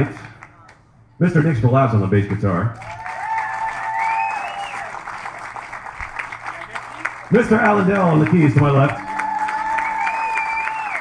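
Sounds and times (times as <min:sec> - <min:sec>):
audience applauding: 0:02.8 - 0:11.0.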